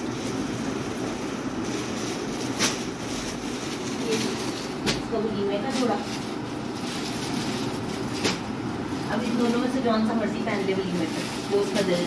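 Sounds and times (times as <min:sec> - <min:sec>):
low rumbling room noise: 0:00.0 - 0:12.0
plastic packet crinkling: 0:00.0 - 0:12.0.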